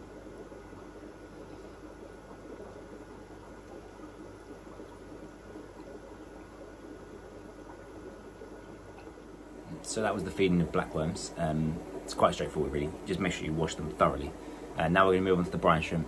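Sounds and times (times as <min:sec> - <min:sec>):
aquarium filter bubbling: 0:00.0 - 0:16.0
faint low hum: 0:00.0 - 0:16.0.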